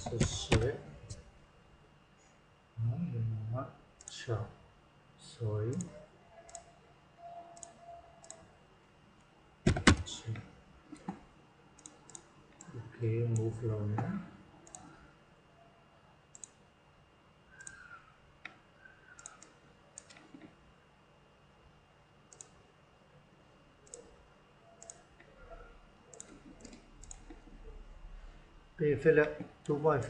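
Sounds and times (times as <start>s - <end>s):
computer mouse clicking: 5.7s - 6.7s, 7.3s - 8.5s, 11.8s - 12.7s, 14.6s - 14.9s, 16.3s - 16.6s, 17.5s - 20.5s, 22.3s - 22.6s, 23.8s - 24.1s, 24.8s - 27.6s.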